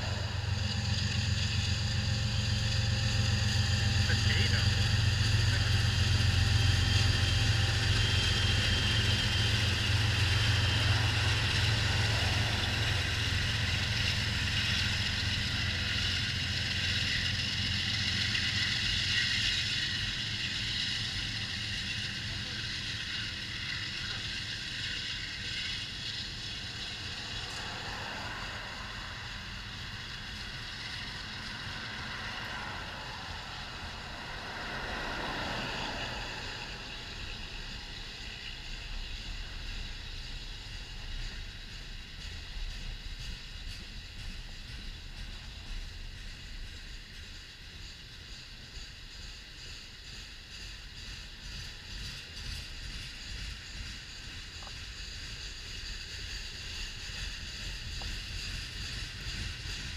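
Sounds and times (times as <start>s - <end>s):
diesel locomotive drone: 0.0s - 59.9s
train wheels rolling on rails: 0.0s - 59.9s.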